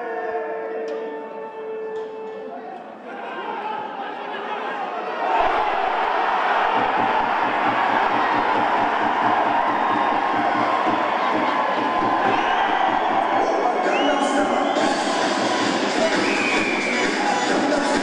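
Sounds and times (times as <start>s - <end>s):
stadium crowd cheering: 3.0s - 18.0s
faint low pulsing beat: 5.4s - 13.5s.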